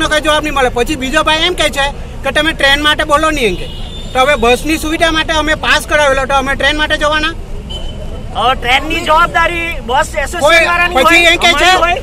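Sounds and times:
man speaking: 0:08.3 - 0:12.0.

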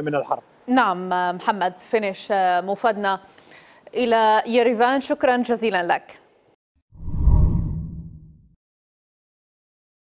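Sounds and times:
deep swoosh: 0:07.0 - 0:08.4.

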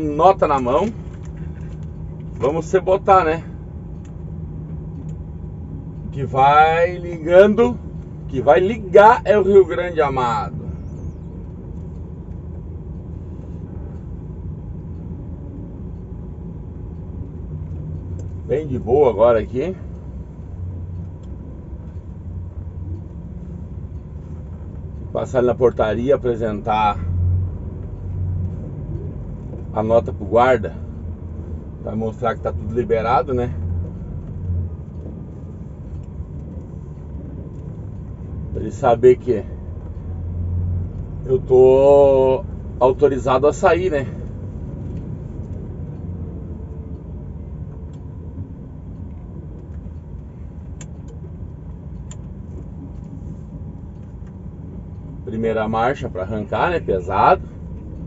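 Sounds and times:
diesel truck engine drone: 0:00.0 - 0:58.0.

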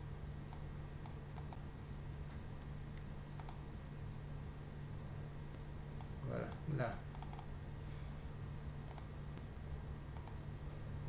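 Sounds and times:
low steady hum: 0:00.0 - 0:11.0
computer mouse clicking: 0:00.5 - 0:01.7, 0:02.6 - 0:03.7, 0:06.0 - 0:07.5, 0:08.8 - 0:09.5, 0:10.1 - 0:10.4.

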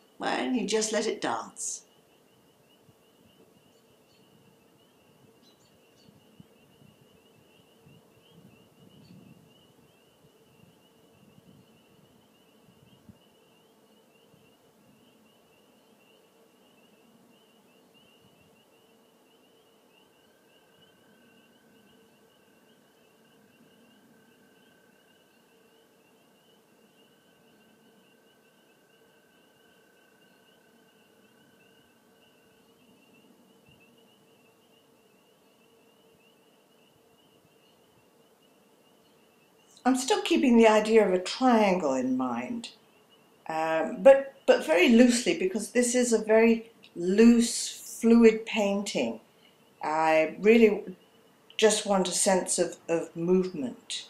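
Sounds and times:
steady high-pitched whine: 0:00.0 - 0:54.0.

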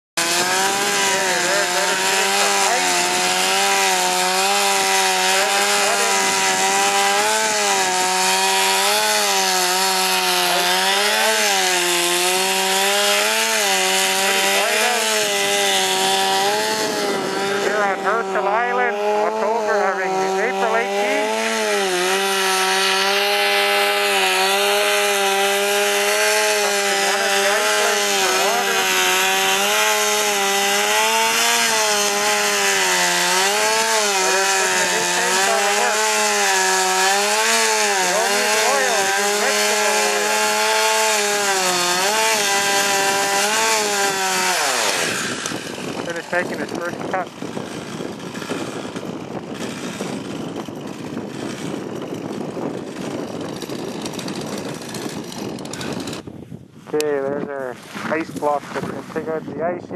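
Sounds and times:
chainsaw cutting ice: 0:00.2 - 0:59.9.

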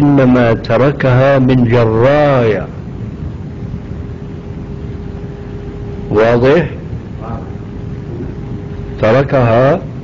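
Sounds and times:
background hiss and hum: 0:00.0 - 0:10.0
faint steady tone: 0:00.0 - 0:10.0.

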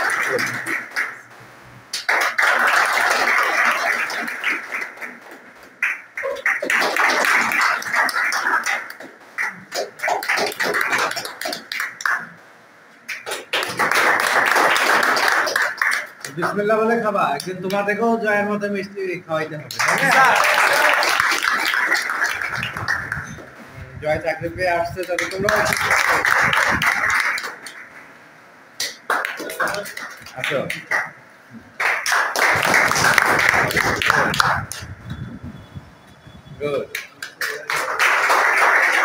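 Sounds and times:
young men clapping and cheering: 0:00.0 - 0:01.3, 0:01.9 - 0:12.4, 0:13.1 - 0:17.9, 0:19.7 - 0:23.5, 0:24.9 - 0:28.1, 0:28.8 - 0:31.2, 0:31.8 - 0:35.0, 0:36.9 - 0:39.0.

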